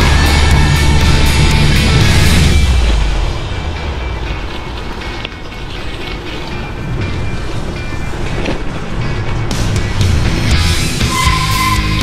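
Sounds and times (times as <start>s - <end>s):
bike rattling and ticking: 0.0s - 11.7s
bike tyre noise: 0.0s - 12.0s.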